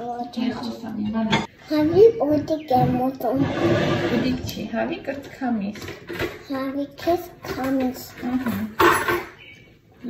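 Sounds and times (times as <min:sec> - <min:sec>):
voices at a table: 0:00.0 - 0:10.0.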